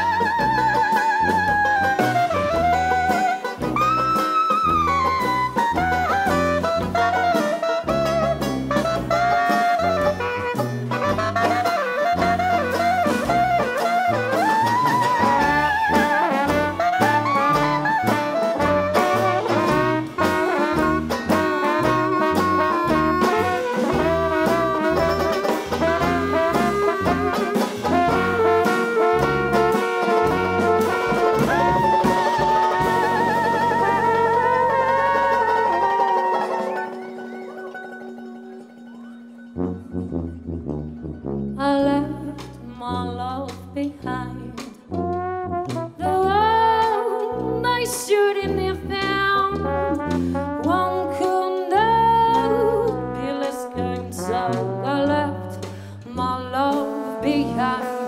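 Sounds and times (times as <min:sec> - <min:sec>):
jazz band playing: 0:00.0 - 0:58.0.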